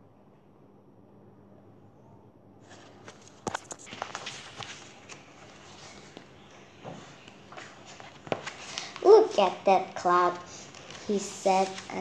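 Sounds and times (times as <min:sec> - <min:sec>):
book paper and cover rustling: 0:02.6 - 0:12.0
taps and knocks on book: 0:06.1 - 0:08.9.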